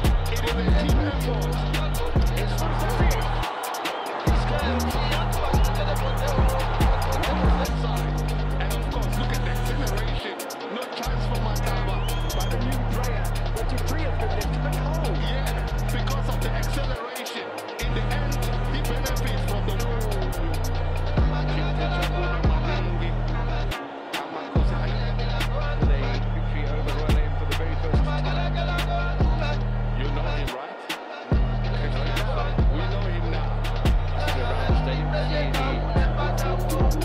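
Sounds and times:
music with heavy bassline and beat: 0.0s - 37.0s.

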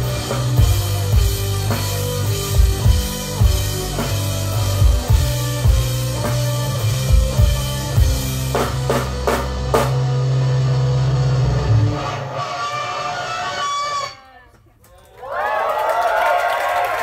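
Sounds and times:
rock band final chord: 0.0s - 14.1s
audience cheering and applauding: 14.7s - 17.0s.

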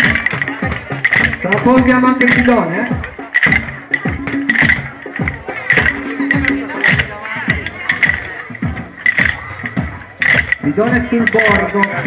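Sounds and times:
children beating percussion sticks: 0.0s - 12.0s
voices: 0.0s - 12.0s.

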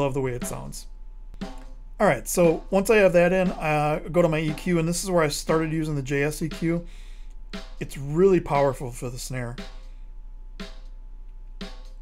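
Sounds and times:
snare drum hits: 1.4s - 1.8s, 2.4s - 6.9s, 11.6s - 12.0s.

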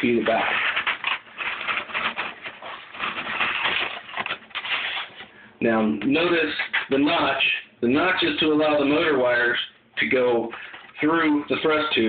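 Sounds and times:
tube scraping against foam: 0.0s - 5.4s, 10.0s - 12.0s.

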